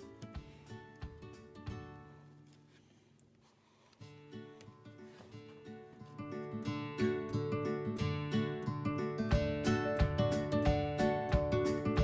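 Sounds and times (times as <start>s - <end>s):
acoustic guitar music: 0.0s - 2.8s, 4.0s - 12.0s.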